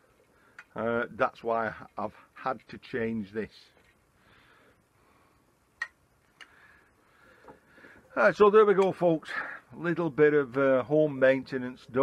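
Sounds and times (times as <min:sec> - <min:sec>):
soft breaths: 0:00.0 - 0:00.8, 0:03.6 - 0:08.2.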